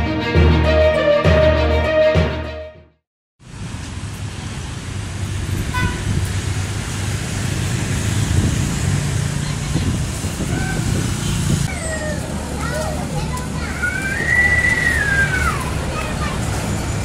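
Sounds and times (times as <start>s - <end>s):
motorbike and bus engines: 3.4s - 17.0s
horn toot: 5.7s - 6.2s
people calling out: 11.7s - 16.4s.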